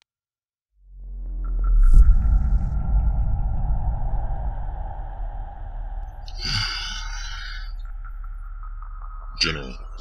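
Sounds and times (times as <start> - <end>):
low steady rumble: 0.9 - 9.3.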